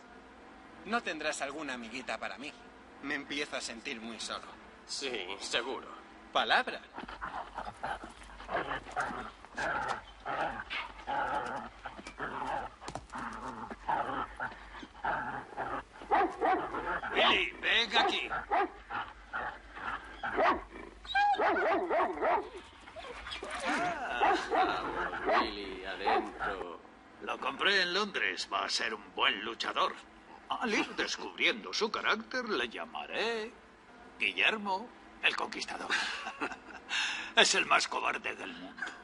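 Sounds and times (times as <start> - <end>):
dog barking: 16.1 - 18.8, 20.2 - 20.7, 21.3 - 22.6, 24.2 - 26.6
speech: 23.8 - 30.0.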